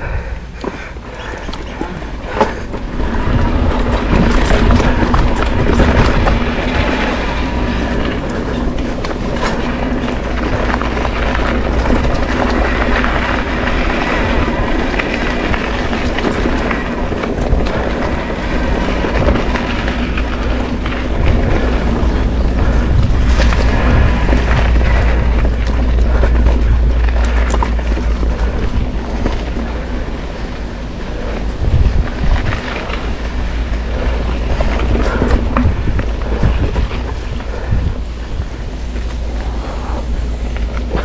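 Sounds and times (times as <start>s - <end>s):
bike rattling and clattering: 0.0s - 41.0s
tyre noise on dirt: 0.0s - 41.0s
wind rumbling on microphone: 0.0s - 41.0s.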